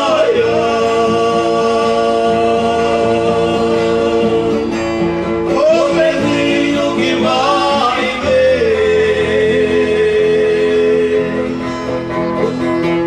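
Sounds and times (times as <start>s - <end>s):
male vocal duo singing: 0.0s - 4.8s, 5.4s - 11.7s
acoustic guitars: 0.0s - 13.0s.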